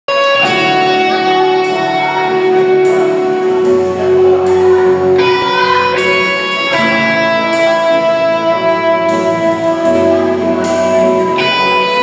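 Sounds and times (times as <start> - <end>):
rock band playing: 0.1 - 12.0.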